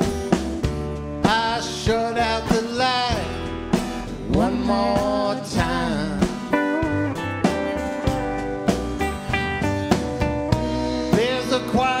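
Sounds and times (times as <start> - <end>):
acoustic guitar: 0.0 - 12.0
bass guitar: 0.0 - 12.0
guitar melody with bent notes: 0.0 - 12.0.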